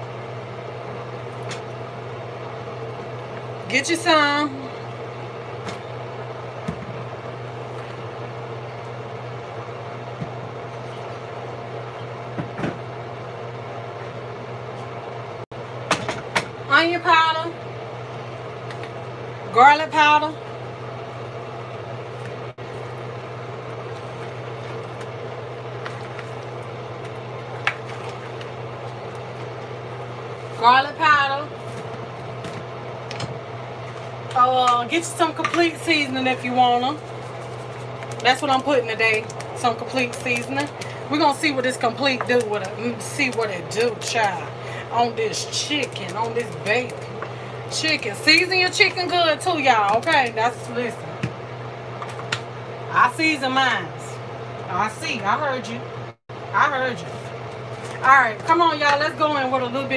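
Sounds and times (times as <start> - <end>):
low electrical hum: 0.0 - 59.9
woman's voice: 3.6 - 4.8, 16.7 - 17.6, 19.5 - 20.4, 30.6 - 31.6, 34.3 - 37.0, 38.2 - 47.1, 47.7 - 51.0, 52.9 - 55.9, 56.5 - 57.3, 58.0 - 59.9.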